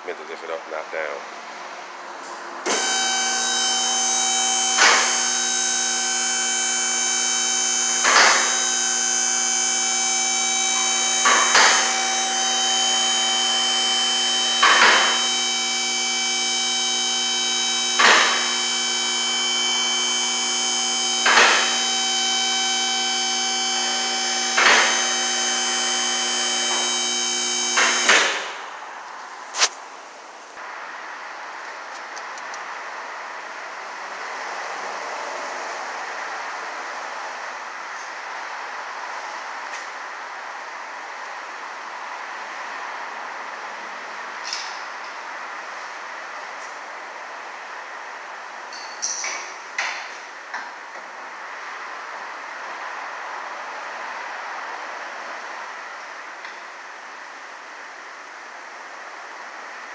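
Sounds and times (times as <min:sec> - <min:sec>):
hydraulic power unit running: 0:02.6 - 0:28.9.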